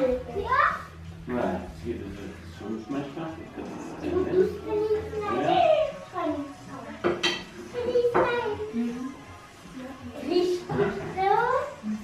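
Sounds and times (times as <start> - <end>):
dishes and cutlery clinking: 6.9 - 8.6, 10.5 - 11.5.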